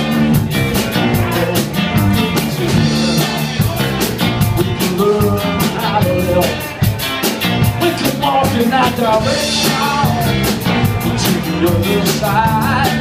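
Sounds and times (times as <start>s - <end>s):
drum kit: 0.0s - 13.0s
electric bass: 0.0s - 13.0s
electric guitar: 0.0s - 13.0s.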